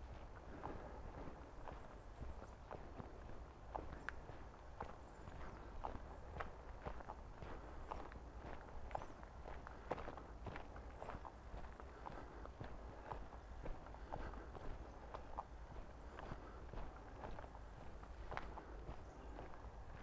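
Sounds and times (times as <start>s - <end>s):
footsteps on dirt path: 0.0s - 20.0s.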